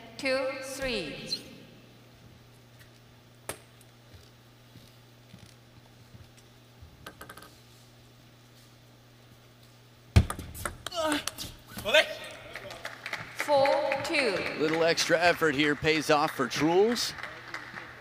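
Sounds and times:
arena hum: 0.0s - 18.0s.

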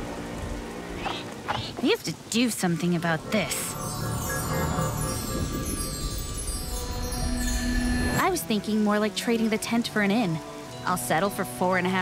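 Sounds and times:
background music: 0.0s - 12.0s
shimmering chimes cascading: 3.3s - 8.6s.

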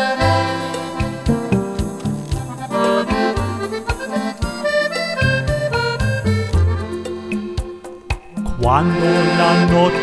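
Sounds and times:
light percussion beat: 0.0s - 9.8s
accordion melody: 0.0s - 10.0s.

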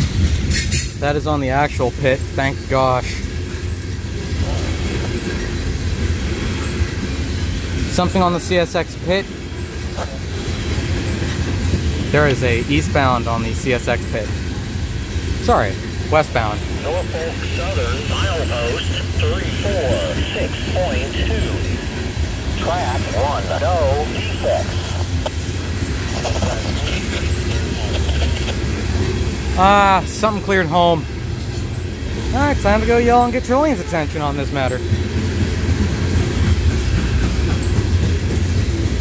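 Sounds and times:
freight train rolling past: 0.0s - 39.0s
steel wheels rumbling on rails: 0.0s - 39.0s
voices: 1.0s - 37.8s.

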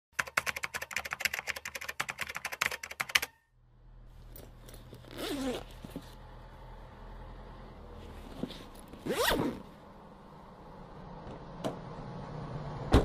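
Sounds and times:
rapid sharp clicks: 0.2s - 3.4s.

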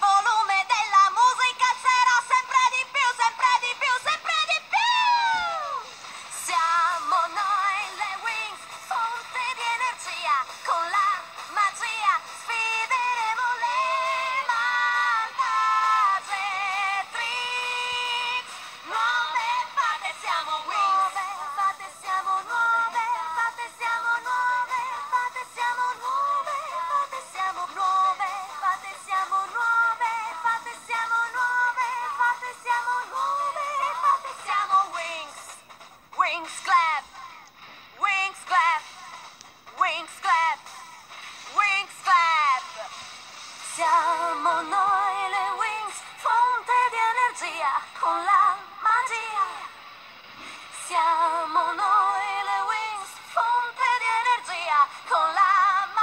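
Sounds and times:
high-pitched a cappella singing: 0.0s - 35.6s, 36.2s - 49.8s, 50.7s - 56.0s.

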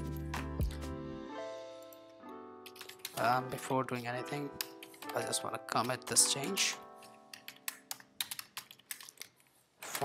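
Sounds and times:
computer keyboard typing: 2.6s - 10.0s.

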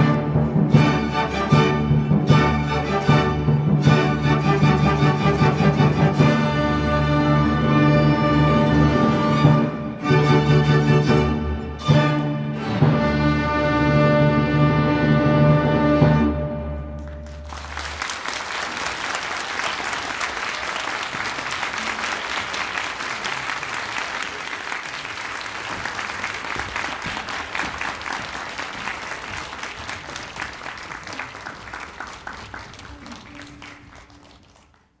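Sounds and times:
audience applauding: 17.0s - 35.0s.

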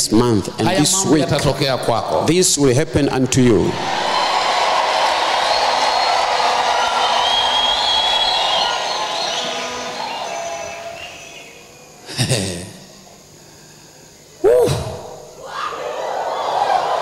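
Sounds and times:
crowd cheering and shouting: 3.0s - 11.7s, 14.6s - 17.0s.

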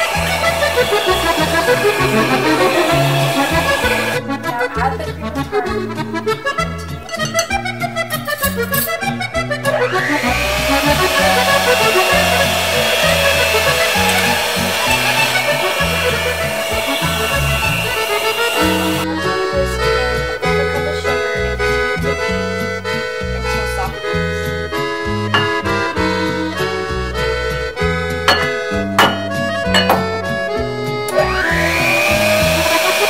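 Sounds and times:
electric hand mixer whipping: 0.0s - 4.3s, 9.0s - 19.2s, 25.3s - 26.9s, 27.9s - 30.4s, 31.0s - 33.0s
accordion music: 0.0s - 33.0s.

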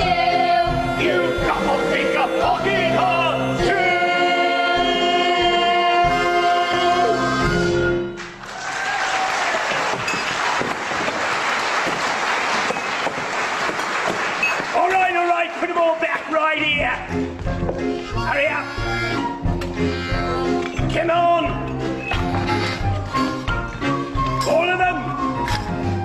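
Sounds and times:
voices singing or calling: 0.0s - 8.0s.

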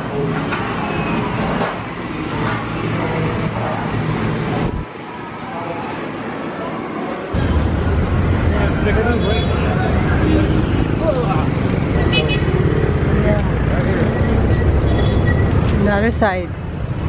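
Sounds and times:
vehicle engines rumbling: 0.0s - 17.0s.

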